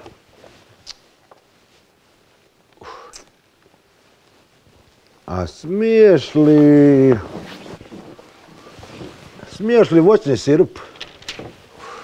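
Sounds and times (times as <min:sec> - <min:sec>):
man exhaling breathily: 0:02.8 - 0:03.3, 0:11.8 - 0:12.0.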